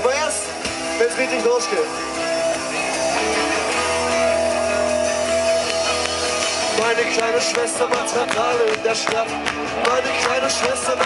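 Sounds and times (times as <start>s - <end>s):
live rock band: 0.0s - 11.0s
strummed electric guitars: 0.0s - 11.0s
person singing: 6.6s - 11.0s.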